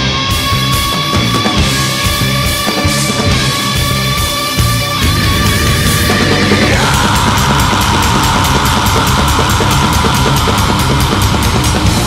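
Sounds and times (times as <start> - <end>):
distorted metal band: 0.0 - 12.0.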